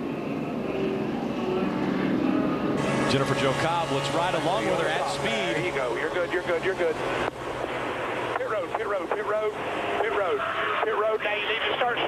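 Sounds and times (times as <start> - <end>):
person talking over two-way radio: 8.3 - 12.0.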